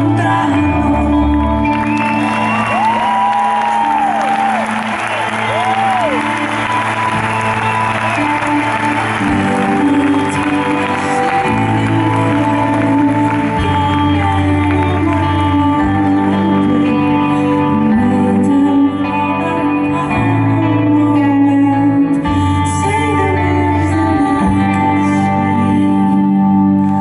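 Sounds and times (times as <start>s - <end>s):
live pop-rock band: 0.0s - 27.0s
audience cheering and applauding: 1.6s - 16.0s.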